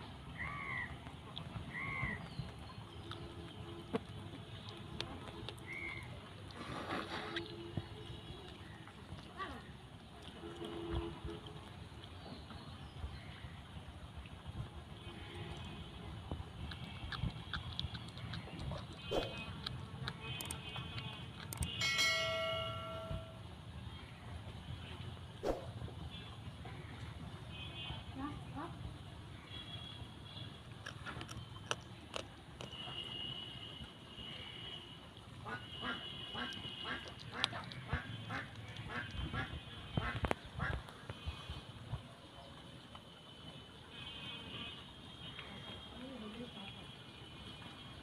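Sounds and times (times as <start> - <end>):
bell chime: 21.8 - 23.4.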